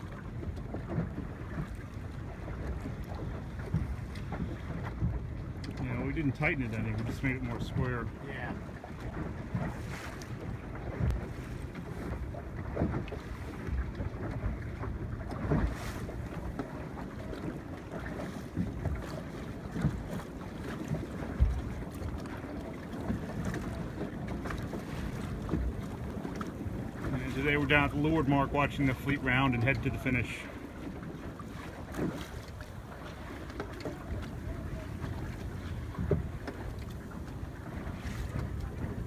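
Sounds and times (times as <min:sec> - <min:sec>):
water lapping against boat hull: 0:00.0 - 0:39.0
wind buffeting microphone: 0:00.0 - 0:39.0.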